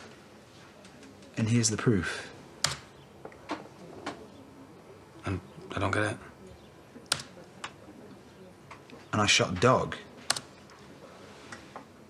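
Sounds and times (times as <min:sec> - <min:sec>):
laptop clicks: 0:02.6 - 0:04.2, 0:07.0 - 0:07.8, 0:10.3 - 0:10.7.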